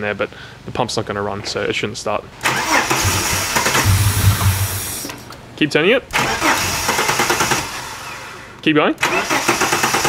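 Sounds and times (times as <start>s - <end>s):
car engine cranking on starter: 2.4s - 5.3s, 6.1s - 10.0s.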